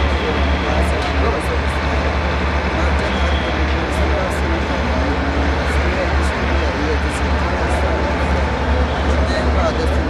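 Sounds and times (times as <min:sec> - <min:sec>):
woman speaking: 0:02.8 - 0:08.6.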